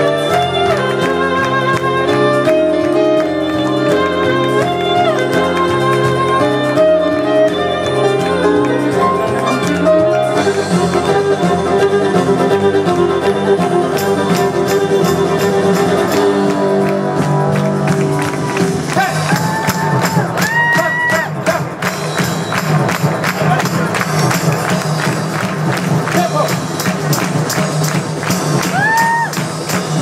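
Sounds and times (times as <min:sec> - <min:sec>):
electronic keyboard backing: 0:00.0 - 0:30.0
fast percussion beat: 0:00.0 - 0:30.0
violin dance music: 0:00.0 - 0:30.0.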